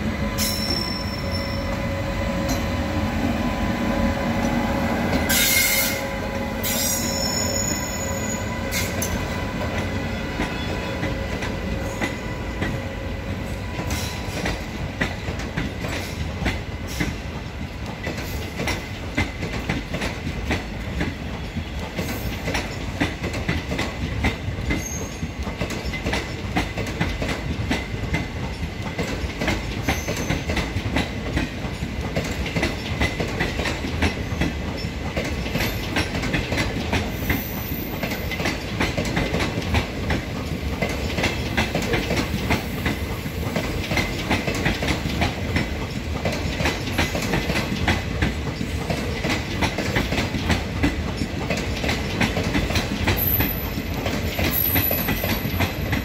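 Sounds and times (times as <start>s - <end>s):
train passing: 0.0s - 56.0s
wheels clicking over rail joints: 13.8s - 56.0s.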